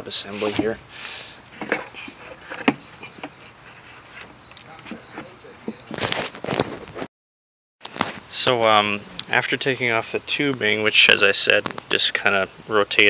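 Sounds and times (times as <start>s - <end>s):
plastic scraping and rattling: 1.5s - 3.5s, 4.1s - 7.1s
plastic and rubber clicks and rustles: 4.2s - 7.1s, 7.8s - 8.2s, 11.5s - 12.0s.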